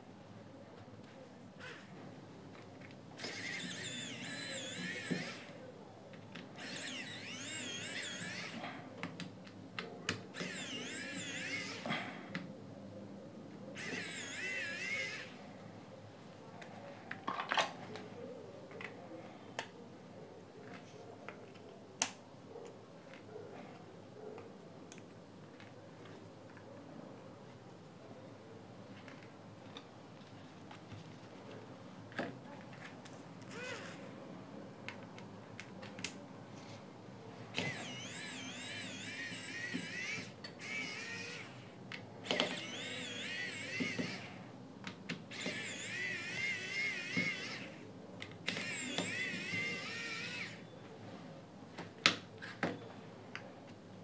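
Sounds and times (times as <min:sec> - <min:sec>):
electric screwdriver whining: 0:03.2 - 0:05.6, 0:06.6 - 0:08.7, 0:10.3 - 0:12.0, 0:13.8 - 0:15.4, 0:33.5 - 0:34.0, 0:37.6 - 0:44.5, 0:45.3 - 0:47.8, 0:48.4 - 0:50.7.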